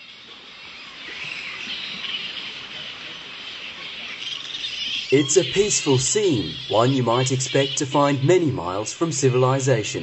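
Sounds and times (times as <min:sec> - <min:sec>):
flying foxes chattering: 0:00.8 - 0:10.0.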